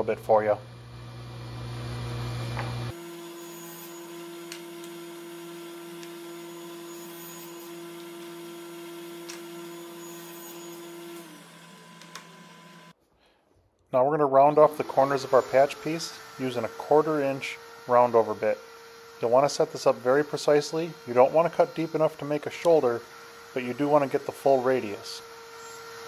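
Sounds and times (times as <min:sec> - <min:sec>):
table saw humming: 0:00.0 - 0:13.0, 0:14.3 - 0:26.0.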